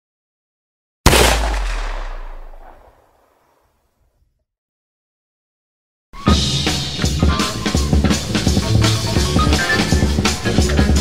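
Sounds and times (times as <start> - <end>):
deep cinematic impact boom: 1.1 - 3.0.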